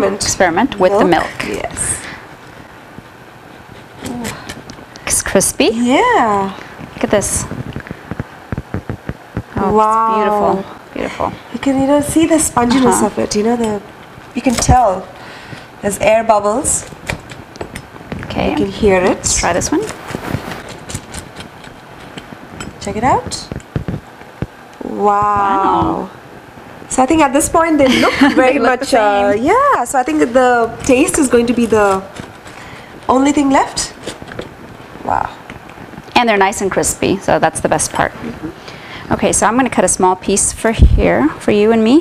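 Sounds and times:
crisp crust crackling: 0:06.0 - 0:10.6, 0:16.8 - 0:26.8, 0:29.5 - 0:36.2
pizza cutter rolling through crust: 0:15.8 - 0:24.1, 0:29.9 - 0:35.1.

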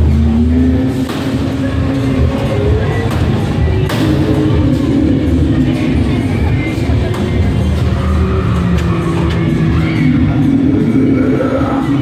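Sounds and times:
ride car rumbling: 0:00.0 - 0:12.0.

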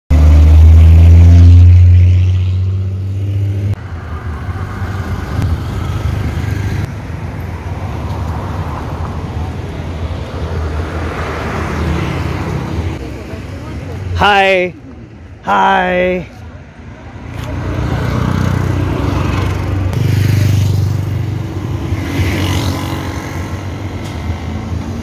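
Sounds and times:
street traffic noise: 0:00.1 - 0:25.0.

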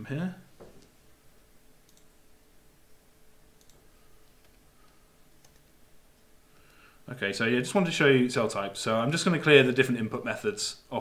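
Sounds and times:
faint steady hum: 0:00.0 - 0:11.0
faint computer clicks: 0:01.8 - 0:02.1, 0:03.6 - 0:05.8.

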